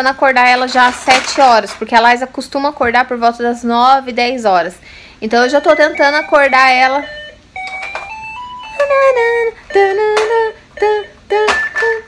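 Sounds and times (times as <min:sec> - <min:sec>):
electronic toy playing a tune: 0:05.5 - 0:12.0.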